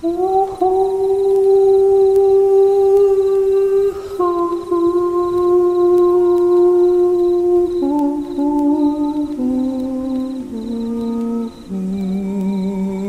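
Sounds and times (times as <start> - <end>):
person humming long notes: 0.0 - 13.0.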